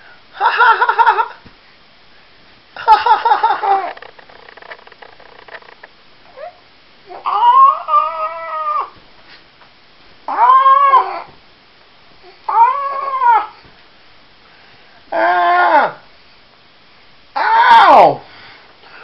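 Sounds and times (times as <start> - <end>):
baby cooing: 6.3 - 9.0, 10.3 - 11.3.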